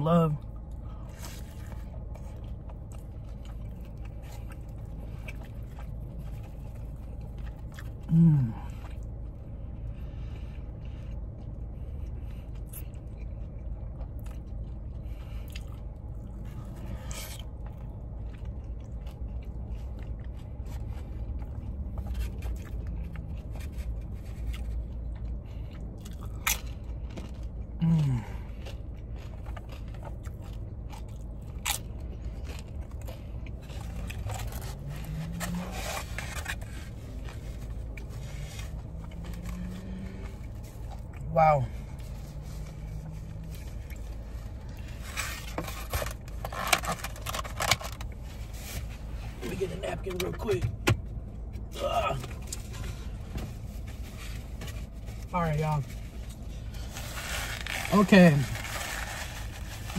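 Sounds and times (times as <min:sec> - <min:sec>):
steady low hum: 0:00.0 - 0:59.9
person chewing food: 0:00.4 - 0:49.4
person humming mm: 0:08.1 - 0:08.7
food handling clicks and scrapes: 0:28.6 - 0:41.2, 0:42.0 - 0:49.4.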